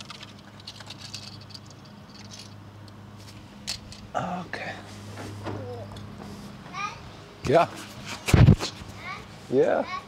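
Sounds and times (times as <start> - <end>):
toy cars clicking on concrete: 0.0 - 3.0.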